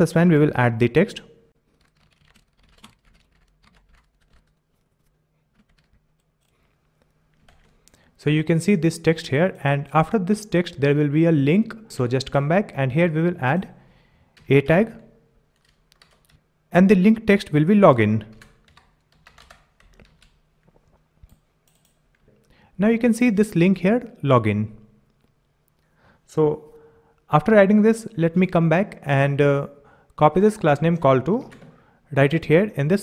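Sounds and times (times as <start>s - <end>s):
keyboard typing: 1.8s - 4.8s, 5.5s - 6.6s, 7.3s - 8.0s, 15.5s - 16.4s, 18.3s - 20.4s, 21.2s - 22.0s.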